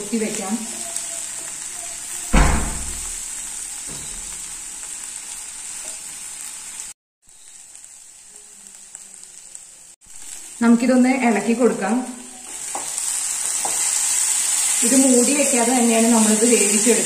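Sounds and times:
vegetables sizzling in a pan: 0.0 - 17.0.

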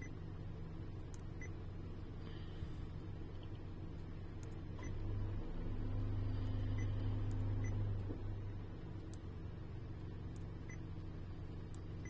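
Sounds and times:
low hum inside car cabin: 0.0 - 12.0.

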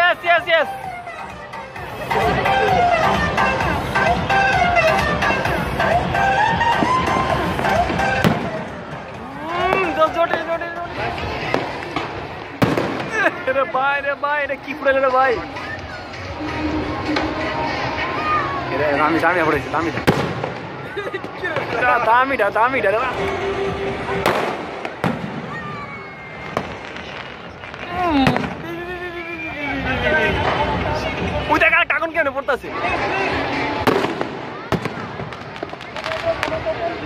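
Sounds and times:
spectators' voices: 0.0 - 37.0
fireworks crackling: 1.7 - 37.0
fireworks bangs: 6.6 - 13.8, 19.8 - 28.9, 33.0 - 37.0.

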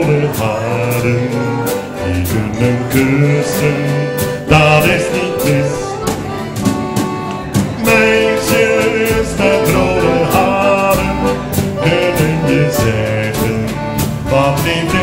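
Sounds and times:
person singing: 0.0 - 6.5, 7.6 - 15.0
accordion: 0.0 - 15.0
acoustic guitar: 0.0 - 15.0
drum kit beat: 0.0 - 15.0.

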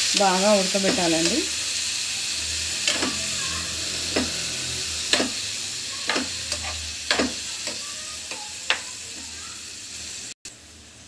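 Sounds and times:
vegetables sizzling in a frying pan: 0.0 - 11.0
spatula scraping a pan: 1.7 - 9.4.

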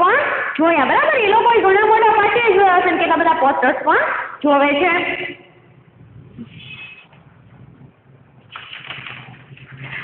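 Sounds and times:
faint steady hum: 0.0 - 8.5
pages rustling: 8.5 - 10.0.

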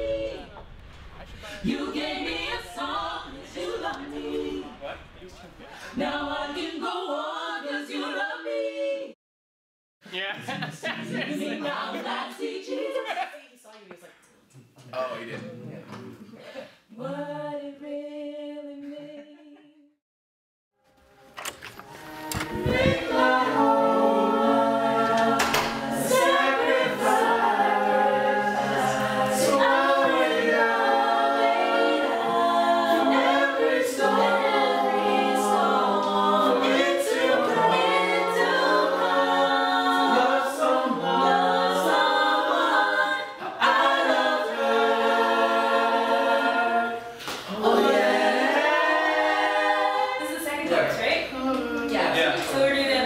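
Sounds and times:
gospel group singing a cappella: 0.0 - 9.2, 10.5 - 13.4, 15.9 - 19.9, 21.8 - 53.0.

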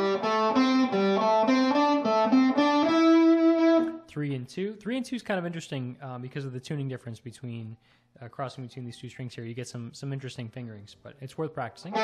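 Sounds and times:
electric guitar single notes: 0.0 - 4.0.

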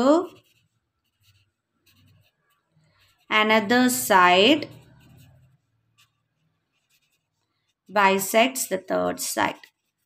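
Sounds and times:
marker scratching on paper: 0.0 - 10.0.

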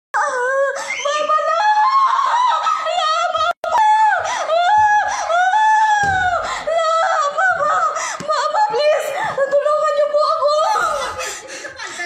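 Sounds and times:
woman crying and sobbing: 0.2 - 12.0.

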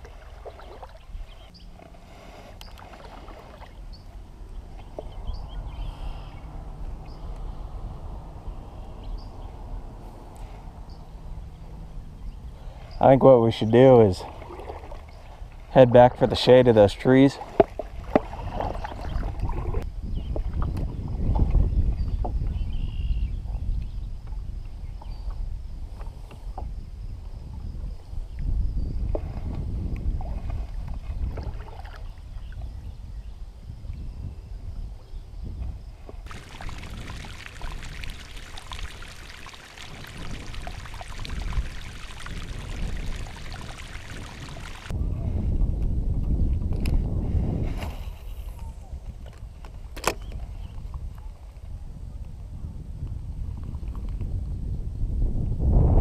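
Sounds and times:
paddle strokes: 0.0 - 6.3, 17.3 - 19.8, 36.0 - 44.9
water sounds: 0.0 - 19.8, 29.1 - 32.6, 36.2 - 45.0
low rumble: 3.9 - 12.9.

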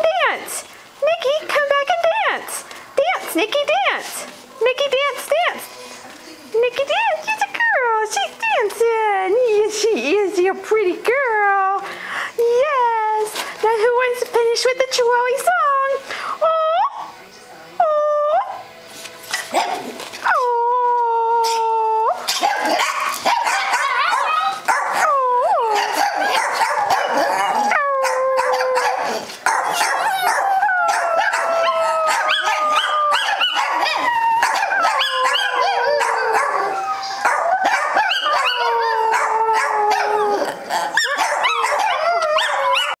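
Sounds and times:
dogs howling: 21.0 - 43.0.

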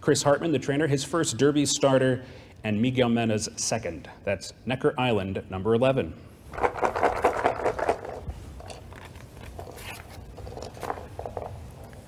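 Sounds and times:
paper rustling: 6.5 - 12.0.

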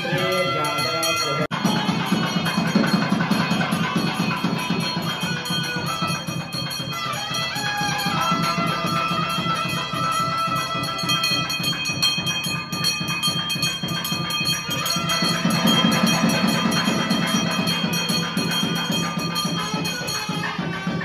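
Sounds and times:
bells ringing: 0.0 - 21.0
devotional music: 0.0 - 21.0.

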